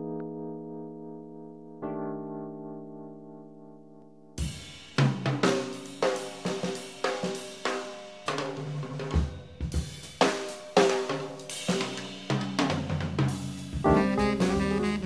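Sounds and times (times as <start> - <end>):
jazz drum kit playing: 4.4 - 15.0.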